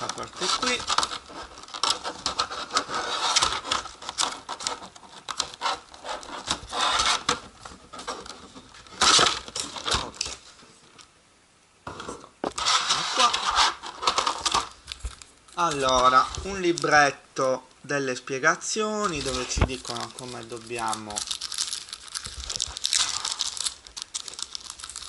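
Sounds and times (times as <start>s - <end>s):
plastic packaging crinkling: 0.0s - 10.6s, 12.6s - 17.1s, 19.0s - 25.0s.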